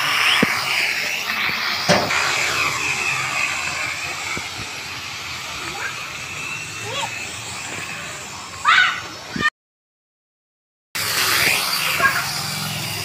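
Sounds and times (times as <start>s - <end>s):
toy drone propellers whining: 0.0s - 9.5s, 11.0s - 13.0s.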